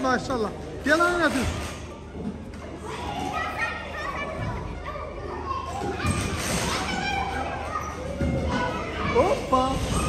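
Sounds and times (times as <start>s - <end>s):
children calling and chattering: 1.9s - 10.0s.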